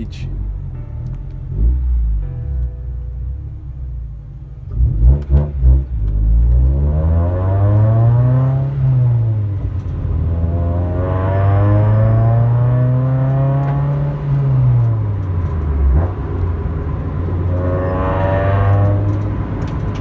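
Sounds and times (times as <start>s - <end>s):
car engine accelerating: 0.0s - 20.0s.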